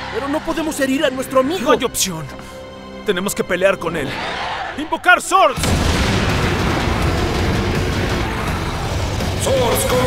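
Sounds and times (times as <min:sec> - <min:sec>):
background music: 0:00.0 - 0:10.0
action sound effects rumble: 0:05.6 - 0:09.4.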